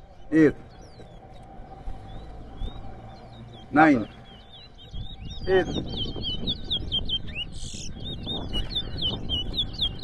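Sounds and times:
finches singing: 0.0s - 10.0s.

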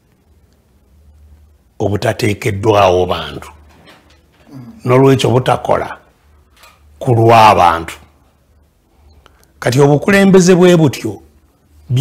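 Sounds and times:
man speaking in deep voice: 1.8s - 3.6s, 4.5s - 6.1s, 7.0s - 8.1s, 9.6s - 11.3s.

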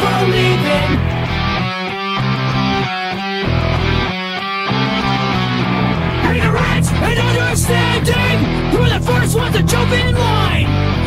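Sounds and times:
bass guitar: 0.0s - 11.0s
distorted electric guitars: 0.0s - 11.0s.

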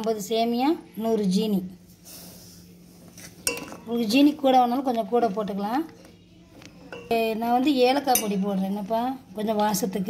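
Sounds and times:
steel spoon clinking on pan: 3.4s - 4.1s, 6.9s - 8.8s.

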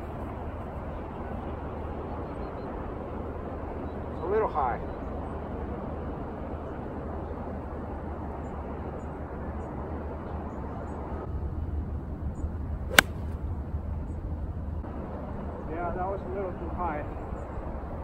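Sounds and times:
golf club striking ball: 12.9s - 13.4s.

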